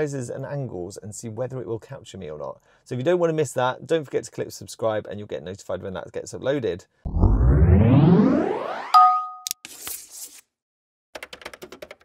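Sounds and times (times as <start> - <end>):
rising electronic sweep: 7.1 - 9.3
ringing two-tone ding: 9.0 - 9.5.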